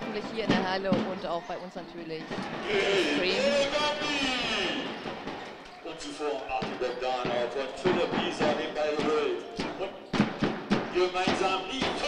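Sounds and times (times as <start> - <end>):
spectators cheering and shouting: 0.0 - 12.0.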